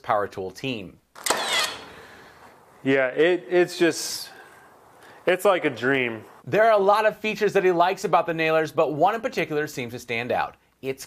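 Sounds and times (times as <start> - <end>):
nailer firing nail into wood: 1.2 - 2.0.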